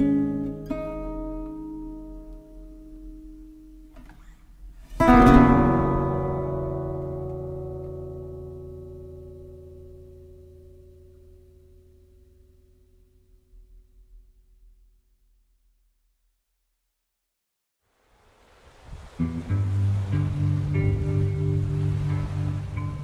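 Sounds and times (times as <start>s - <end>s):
nylon-string guitar chord ringing: 0.0s - 13.5s, 19.2s - 23.0s.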